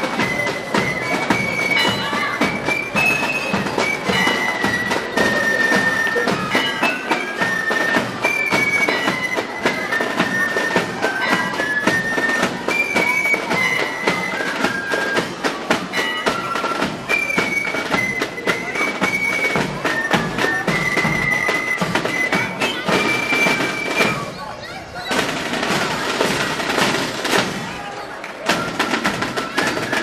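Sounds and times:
side drums and bass drum beating: 0.0 - 12.7, 13.4 - 24.3, 25.1 - 27.8
bagpipe melody: 0.0 - 24.2.

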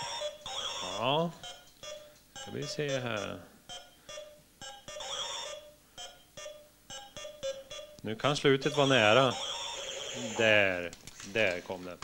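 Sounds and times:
short electronic beeps: 0.0 - 8.0.

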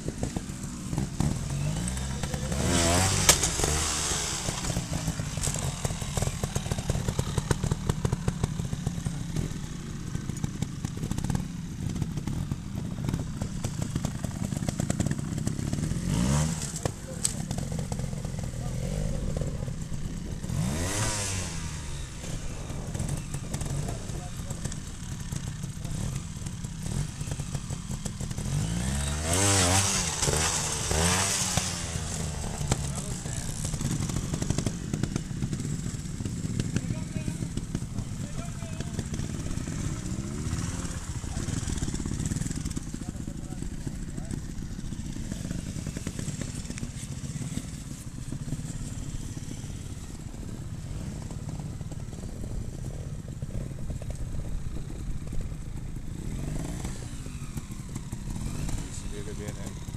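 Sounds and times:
motorcycle engines idling: 0.0 - 59.9
motorcycle throttle blips: 0.0 - 59.9.

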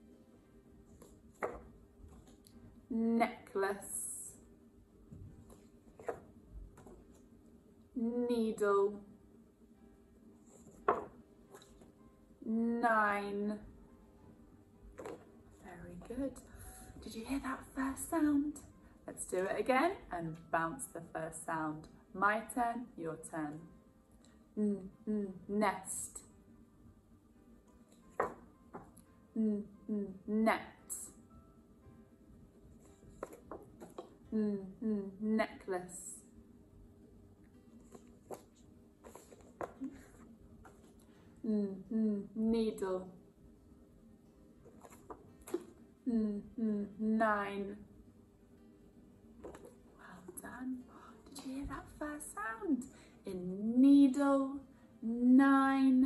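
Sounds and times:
faint steady hum: 0.0 - 56.0
paper cards tapping and rustling: 1.0 - 2.6, 5.4 - 7.2, 10.6 - 11.9, 15.0 - 15.3, 28.1 - 29.0, 32.8 - 34.2, 37.8 - 41.1, 44.6 - 45.8, 49.4 - 49.8
paper card slap: 28.2 - 28.4
faint paper rustle: 37.7 - 41.3, 44.6 - 45.8.

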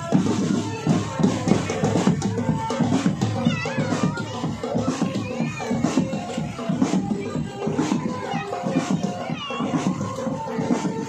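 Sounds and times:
drum band music: 0.0 - 11.0.

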